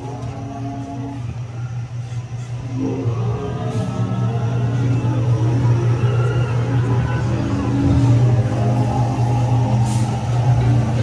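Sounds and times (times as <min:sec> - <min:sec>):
ride music: 0:00.0 - 0:11.0
ride vehicle humming on track: 0:00.0 - 0:11.0.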